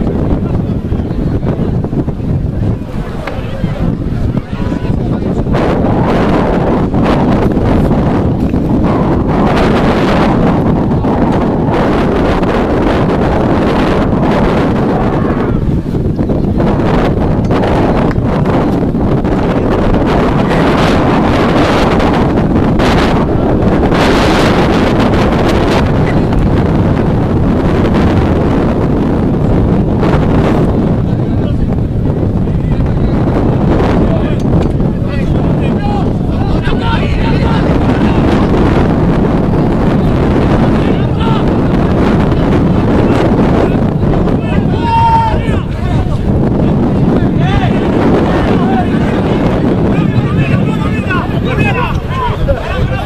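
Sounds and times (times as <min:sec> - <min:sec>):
faint voices: 0:00.0 - 0:53.0
wind buffeting microphone: 0:00.0 - 0:53.0.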